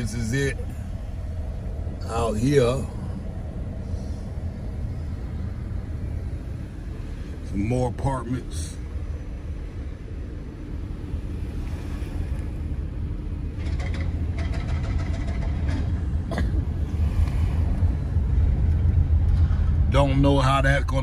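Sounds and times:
engine and tyre rumble: 0.0s - 21.0s.

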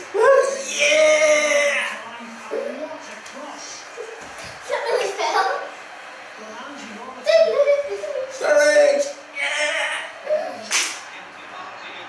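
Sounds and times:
room noise: 0.0s - 12.0s
man shouting: 0.1s - 2.0s, 8.4s - 10.6s.

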